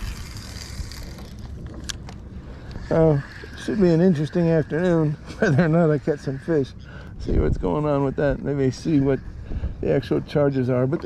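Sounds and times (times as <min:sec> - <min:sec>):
wind buffeting microphone: 0:07.1 - 0:10.7.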